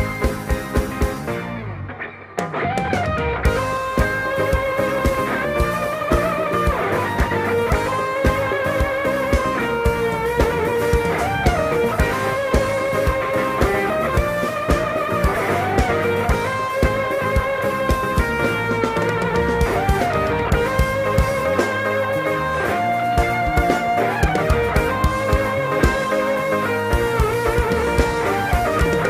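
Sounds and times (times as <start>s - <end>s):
electric guitar melody: 0.0s - 29.0s
live band playing pop ballad: 0.0s - 29.0s.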